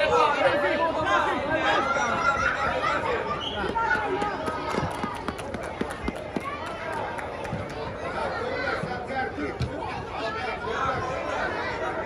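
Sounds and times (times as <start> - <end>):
chatter of children and onlookers: 0.0 - 12.0.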